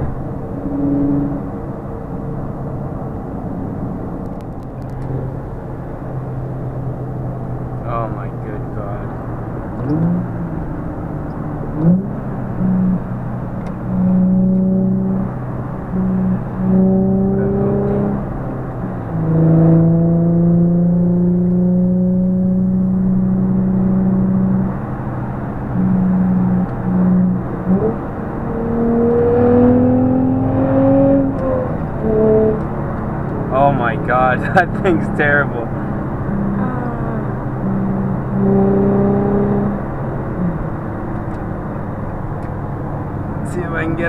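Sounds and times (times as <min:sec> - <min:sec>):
car engine accelerating: 0:00.0 - 0:44.0.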